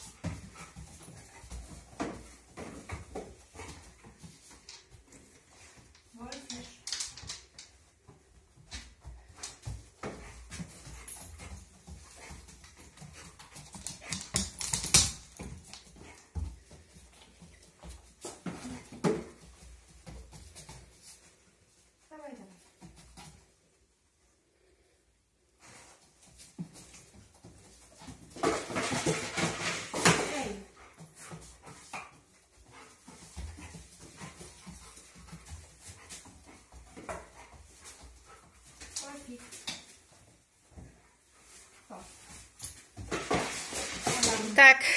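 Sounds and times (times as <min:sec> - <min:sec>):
dog sniffing and panting: 0:00.0 - 0:06.5, 0:07.9 - 0:22.0, 0:25.5 - 0:43.1.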